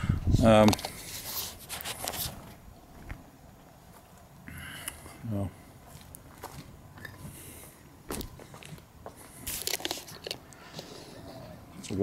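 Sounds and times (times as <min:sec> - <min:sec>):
footsteps scuffing on wet asphalt: 0:05.8 - 0:07.1.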